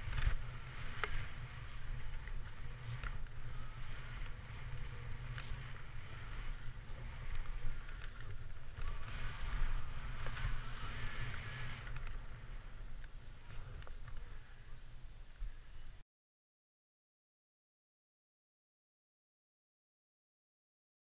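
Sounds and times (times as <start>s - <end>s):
skis hissing through snow: 0.0s - 13.5s.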